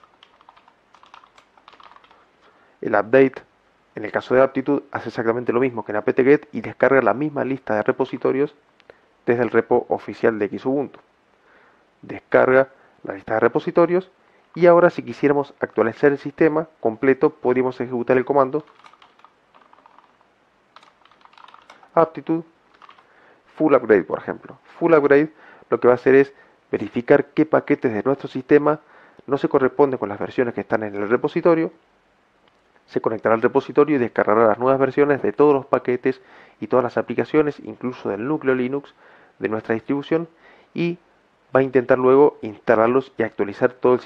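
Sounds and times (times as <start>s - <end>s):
keyboard typing clicks: 0.0s - 2.2s, 18.6s - 20.2s, 20.8s - 21.9s, 22.7s - 23.1s.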